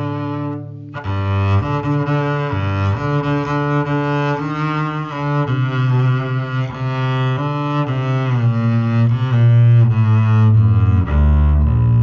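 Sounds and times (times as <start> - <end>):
bowed double bass: 0.0 - 12.0.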